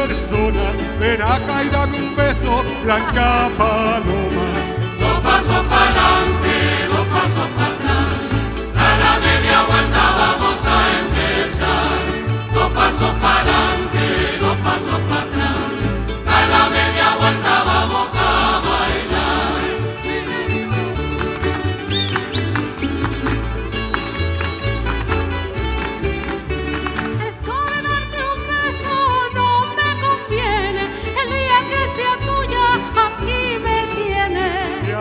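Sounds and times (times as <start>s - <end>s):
double bass line: 0.0s - 35.0s
plucked string ensemble: 0.0s - 35.0s
many voices singing together: 4.3s - 20.6s.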